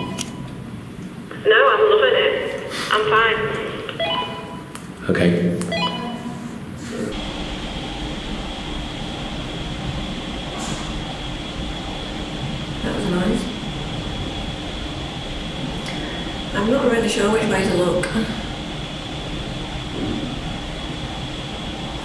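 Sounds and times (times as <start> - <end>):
electrical hum: 0.0 - 22.0
garbled voice over walkie-talkie: 1.4 - 3.7
faint high whine: 7.1 - 22.0.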